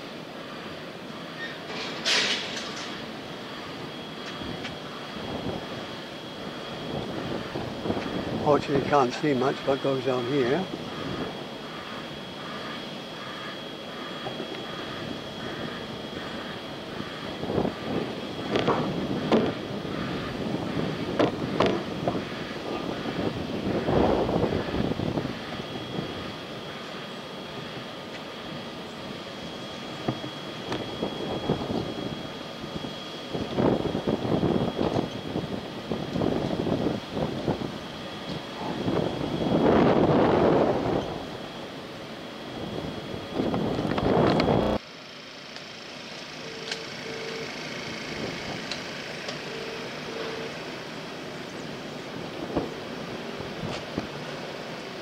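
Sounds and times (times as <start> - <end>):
background hum: 0.0 - 54.8
high-pitched whine: 0.0 - 55.0.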